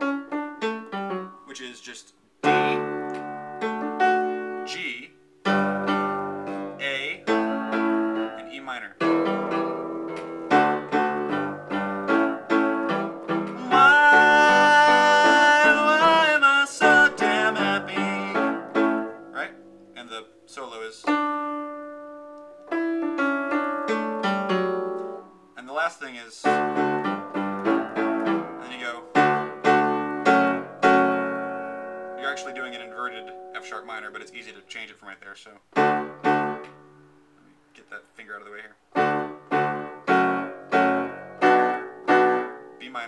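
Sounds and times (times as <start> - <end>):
piano chords: 0.0 - 1.8, 2.4 - 25.6, 26.4 - 34.7, 35.7 - 37.4, 38.9 - 43.0
voice holding long note: 13.6 - 18.6.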